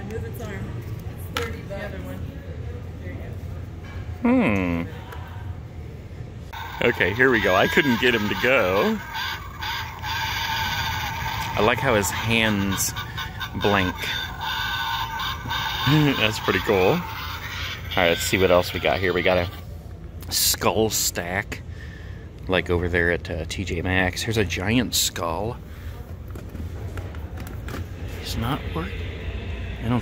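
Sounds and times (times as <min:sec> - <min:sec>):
store background rumble: 0:00.0 - 0:30.0
man laughing: 0:06.6 - 0:19.6
prop sound effect through small speaker: 0:06.6 - 0:19.6.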